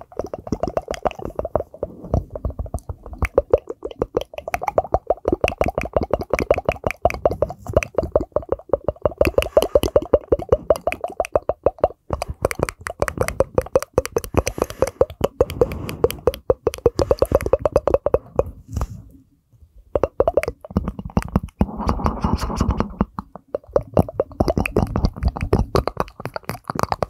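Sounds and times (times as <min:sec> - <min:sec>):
rapid pitched mouth pops: 0:00.0 - 0:19.1, 0:19.9 - 0:27.0.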